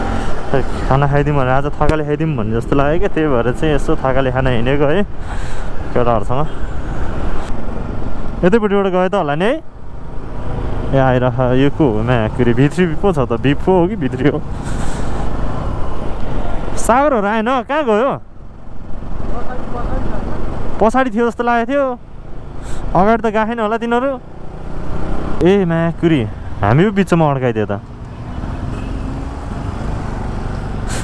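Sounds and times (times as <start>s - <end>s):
road noise: 0.0s - 31.0s
man talking: 0.5s - 5.1s, 5.9s - 6.6s, 8.4s - 9.6s, 10.9s - 14.5s, 16.8s - 18.2s, 19.3s - 22.0s, 22.7s - 24.2s, 25.4s - 27.8s
motorcycle engine: 18.2s - 31.0s.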